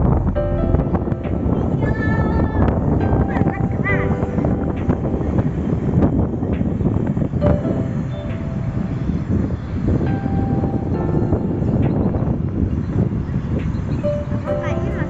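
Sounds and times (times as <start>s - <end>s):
motorbikes: 0.0s - 15.0s
street traffic rumble: 0.0s - 15.0s
wind buffeting microphone: 0.0s - 15.0s.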